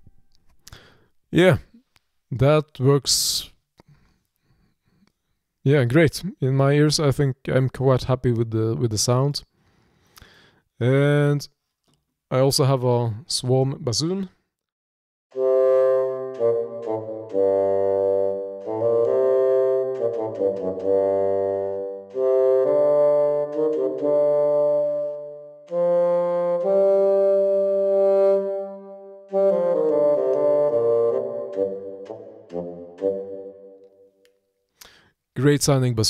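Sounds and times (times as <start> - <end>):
bassoon melody: 15.3 - 34.3.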